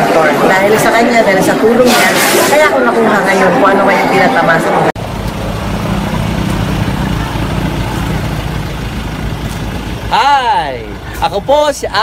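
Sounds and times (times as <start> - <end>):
car engine idling: 5.0 - 12.0.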